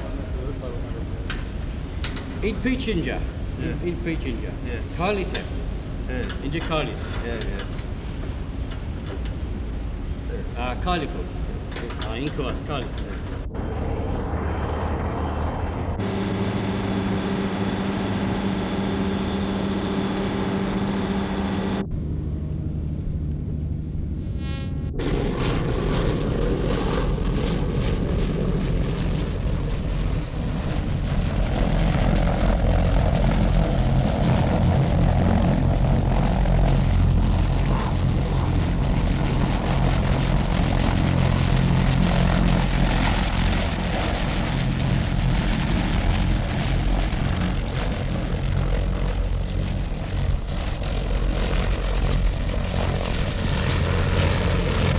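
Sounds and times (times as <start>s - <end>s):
loud engine drone: 12.2s - 54.9s.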